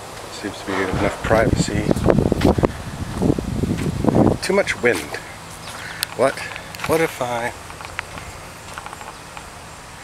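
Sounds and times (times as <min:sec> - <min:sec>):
low steady outdoor background: 0:00.0 - 0:10.0
footsteps on dirt path: 0:02.0 - 0:04.0, 0:04.8 - 0:09.4.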